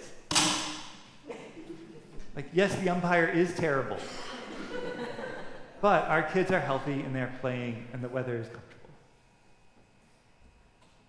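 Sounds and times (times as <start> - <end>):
wooden stick whack with echo: 0.3 - 1.0.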